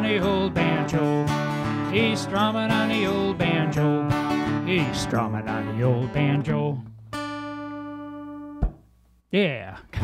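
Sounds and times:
acoustic guitar chord ringing: 0:00.0 - 0:08.9
guitar muting knock: 0:08.5 - 0:08.9.

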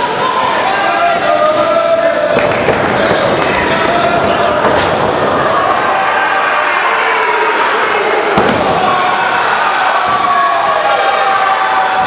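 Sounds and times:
crowd murmuring and calling out: 0:00.0 - 0:12.0.

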